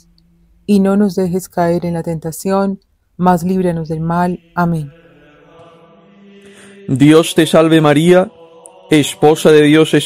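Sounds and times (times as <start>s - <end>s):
sustained ambient music: 0.0s - 2.2s, 3.1s - 10.0s.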